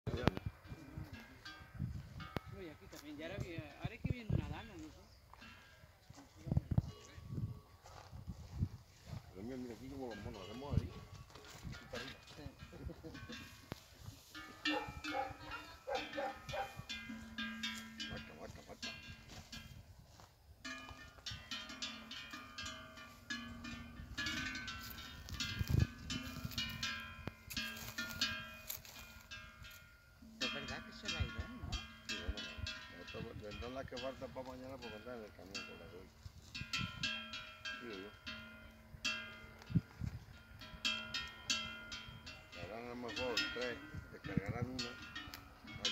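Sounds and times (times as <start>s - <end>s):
cattle bells clanking: 0.1s - 45.9s.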